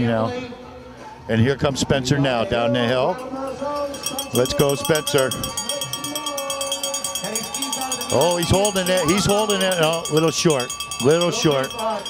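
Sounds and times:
cowbells clanging: 3.1 - 12.0
crowd cheering: 3.5 - 12.0.

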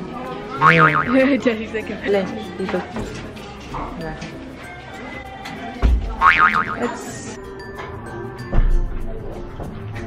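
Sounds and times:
background music: 0.0 - 10.0
cartoon boing sound effect: 0.6 - 1.2, 6.2 - 6.9.

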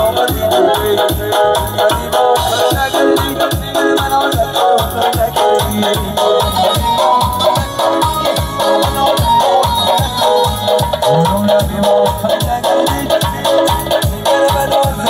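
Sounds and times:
keyboard melody: 0.0 - 14.2
fast drum beat: 10.3 - 15.0.

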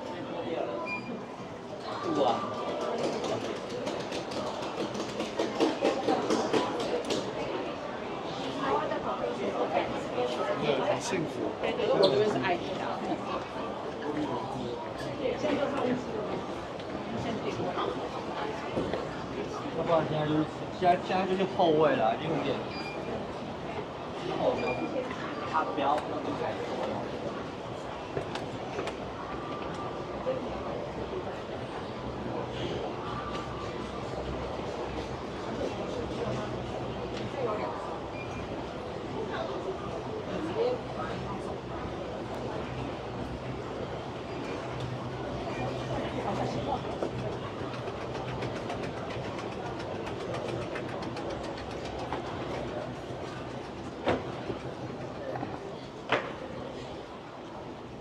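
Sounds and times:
murmur of voices: 0.0 - 58.0
escalator humming and clacking: 32.9 - 56.7.

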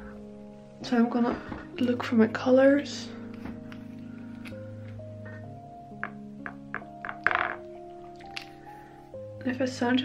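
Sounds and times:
soft lo-fi music: 0.0 - 10.0
paint tubes clicking: 6.0 - 8.6.

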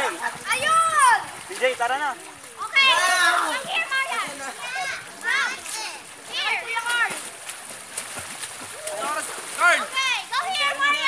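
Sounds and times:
water splashing in a pool: 0.0 - 11.0
children shouting: 2.6 - 7.2, 9.7 - 11.0.

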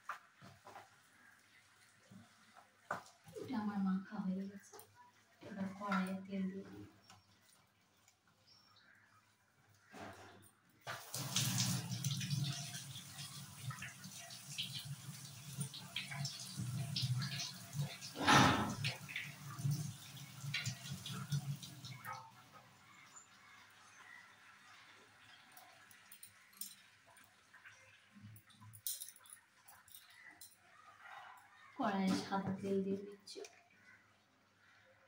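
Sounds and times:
water splash: 15.6 - 19.9.

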